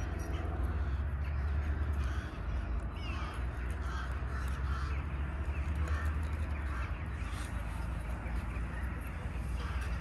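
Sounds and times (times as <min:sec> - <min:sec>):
crows cawing: 0:00.3 - 0:07.5, 0:09.2 - 0:10.0.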